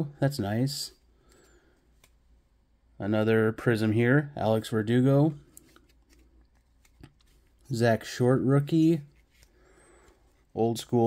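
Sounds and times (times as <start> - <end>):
trading cards being shuffled: 5.3 - 8.2.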